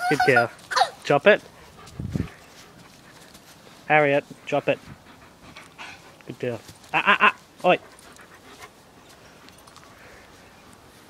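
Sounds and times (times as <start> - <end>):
dog panting: 0.3 - 6.8, 7.5 - 11.0.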